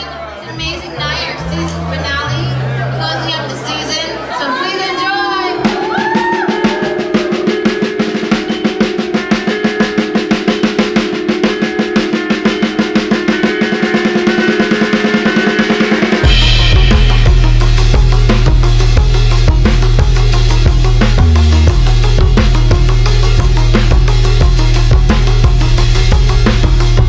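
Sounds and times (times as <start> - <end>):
held synth notes: 0.0 - 27.0
heavy bass and steady beat: 5.4 - 27.0
snare drum build-up: 5.7 - 11.0.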